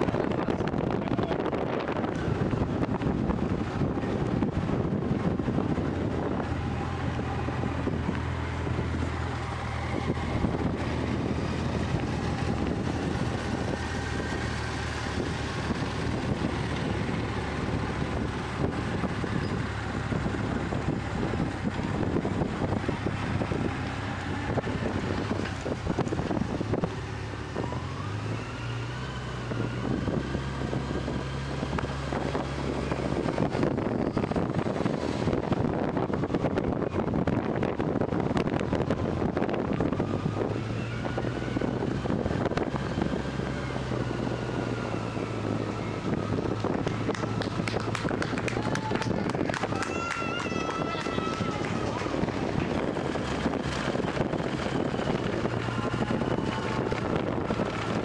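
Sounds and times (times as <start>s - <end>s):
vehicle engine running: 0.0s - 58.0s
wind rumbling on microphone: 0.0s - 58.0s.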